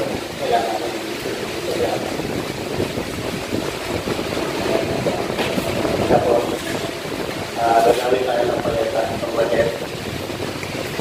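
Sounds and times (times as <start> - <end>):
indistinct voices talking: 0.0 - 9.9
rushing background noise: 0.0 - 11.0.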